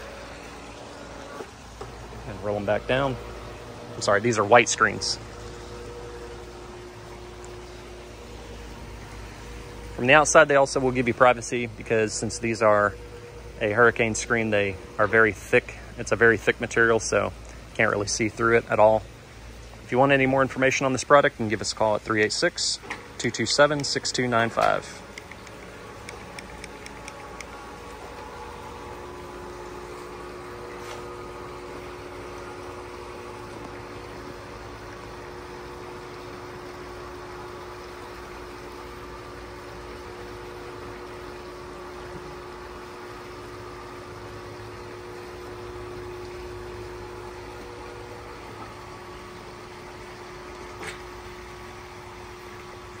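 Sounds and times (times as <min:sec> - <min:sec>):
motor hum: 0:00.0 - 0:53.0.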